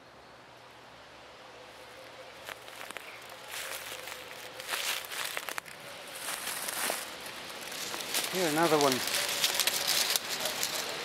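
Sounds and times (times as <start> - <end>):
footsteps crunching dry leaves: 1.8 - 11.0.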